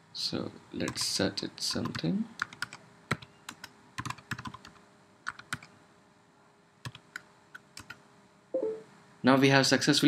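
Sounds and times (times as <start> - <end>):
computer keyboard typing: 0.8 - 5.7, 6.8 - 8.0.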